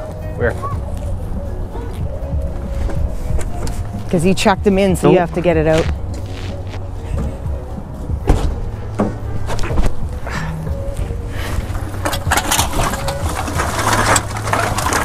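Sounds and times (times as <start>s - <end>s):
music: 0.0s - 15.0s
cans rattling in plastic bags: 11.8s - 15.0s.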